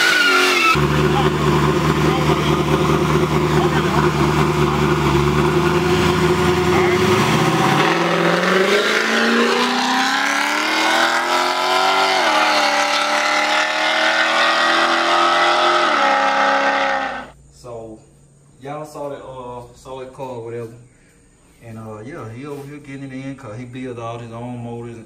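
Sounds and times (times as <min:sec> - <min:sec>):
drag car engine accelerating: 0:00.0 - 0:17.4.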